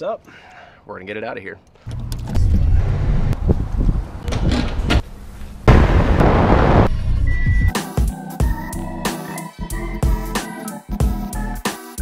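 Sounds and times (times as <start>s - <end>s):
background music: 7.7s - 12.0s.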